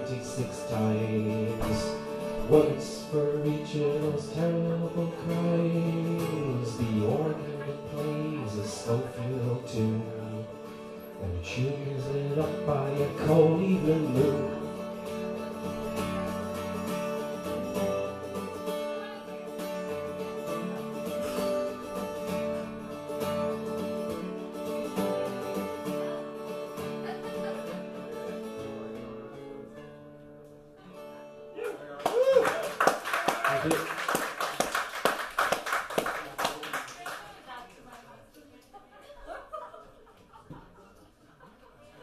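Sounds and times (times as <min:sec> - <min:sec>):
guitar chords: 0:00.0 - 0:31.6
audience applause: 0:31.9 - 0:38.1.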